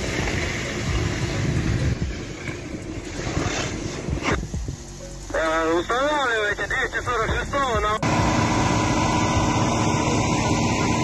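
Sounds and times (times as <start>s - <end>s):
fire roaring: 0.0s - 11.0s.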